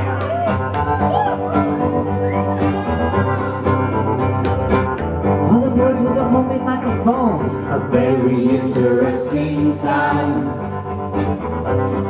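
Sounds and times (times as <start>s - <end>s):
person singing: 0.0s - 4.6s, 5.4s - 11.0s
bending guitar melody: 0.0s - 12.0s
live rock band playing: 0.0s - 12.0s.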